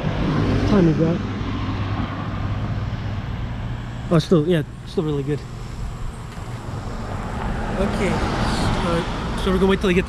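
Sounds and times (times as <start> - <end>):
road noise: 0.0 - 10.0
car engine idling: 1.0 - 10.0.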